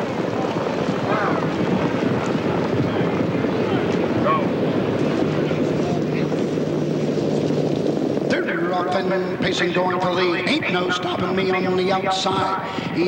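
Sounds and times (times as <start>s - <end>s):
low engine-like hum: 0.0s - 11.7s
grandstand crowd noise: 0.0s - 13.0s.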